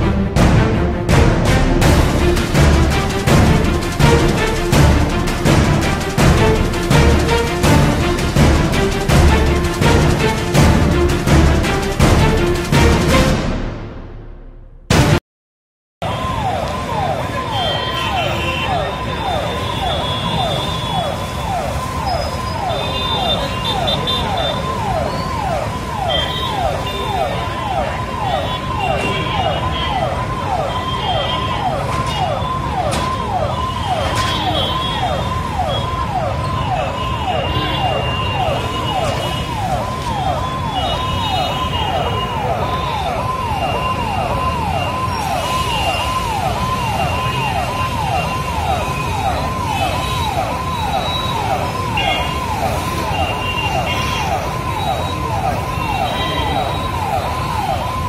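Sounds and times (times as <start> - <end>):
siren in falling sweeps: 16.0 - 58.0.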